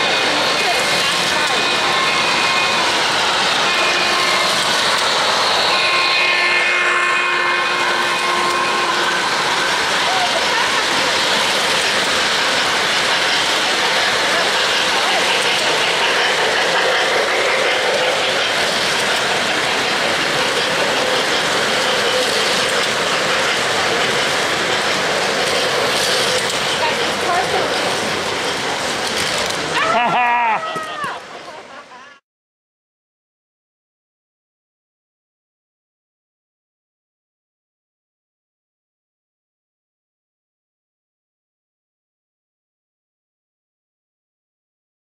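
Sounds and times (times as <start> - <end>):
hall background noise: 0.0 - 32.2
model steam locomotive running: 0.0 - 32.2.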